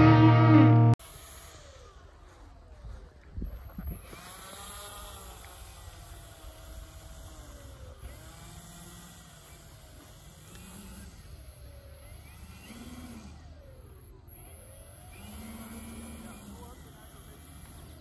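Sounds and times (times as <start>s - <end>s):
model plane propellers whirring: 1.1s - 18.0s.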